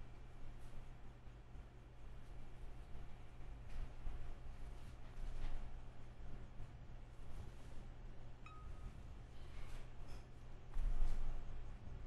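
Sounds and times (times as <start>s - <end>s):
low steady hum: 0.0s - 12.0s
single-pitched ding: 8.5s - 8.9s.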